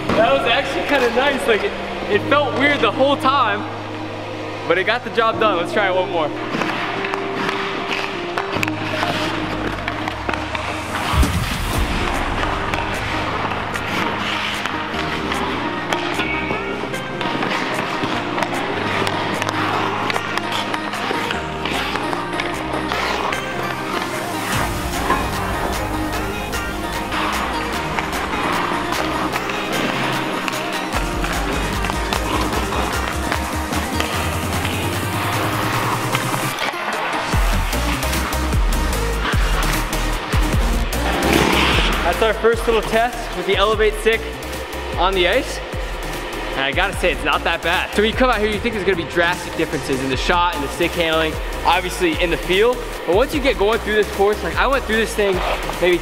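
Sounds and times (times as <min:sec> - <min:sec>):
ice skates scraping: 0:00.0 - 0:56.0
hockey stick knocking pucks: 0:06.5 - 0:11.2, 0:12.0 - 0:38.3, 0:39.2 - 0:43.7, 0:47.2 - 0:56.0
background music with bass line: 0:08.2 - 0:36.6, 0:37.3 - 0:56.0
sharp crack: 0:09.8 - 0:14.8, 0:41.0 - 0:42.4.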